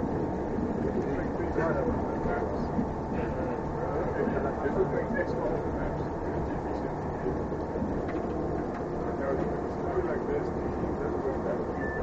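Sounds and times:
bus engine and road rumble: 0.0 - 12.0
faint voices: 0.2 - 12.0.

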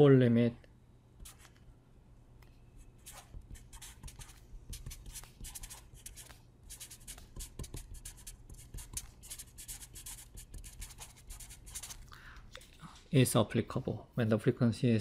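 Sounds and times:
steady low hum: 0.0 - 15.0
felt-tip marker scratching on paper: 1.2 - 1.6, 2.8 - 12.0.

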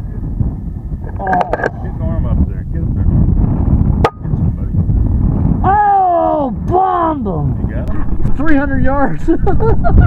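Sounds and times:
wind buffeting microphone: 0.0 - 10.0
man exclaiming oh: 5.6 - 7.1.

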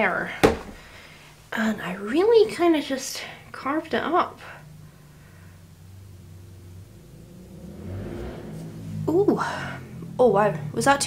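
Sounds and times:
car engine rumble: 3.8 - 11.0.

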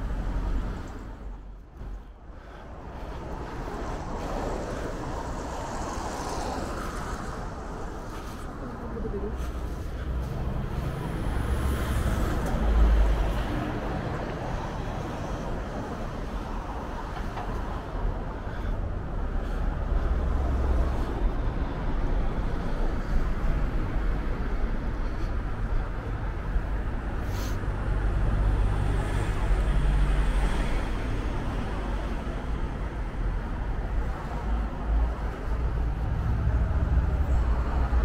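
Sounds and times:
traffic rumble: 0.0 - 38.0.

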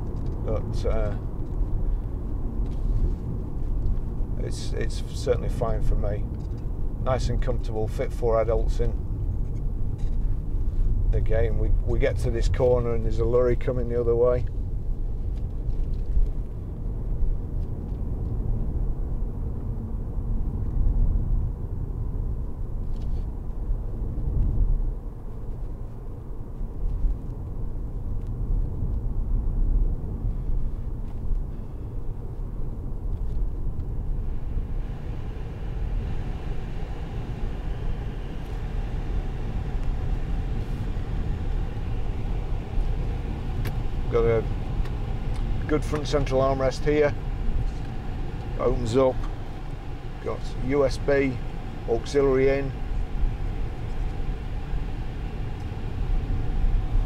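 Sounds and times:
car cabin road rumble: 0.0 - 57.0.

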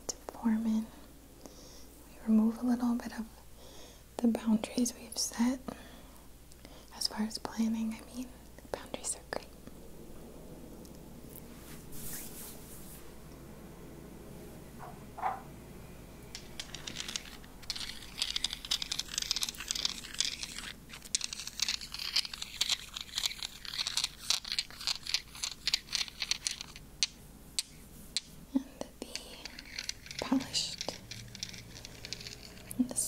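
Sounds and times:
fingers rubbing and tapping crystal: 16.4 - 28.3, 29.0 - 32.8.

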